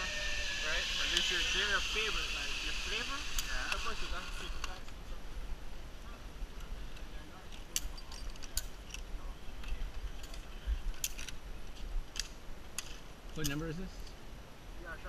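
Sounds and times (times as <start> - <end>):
harness gear clicks: 6.9 - 13.6.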